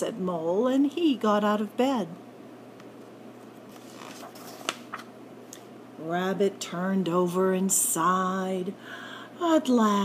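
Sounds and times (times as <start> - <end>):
paper page rustling: 3.5 - 5.1.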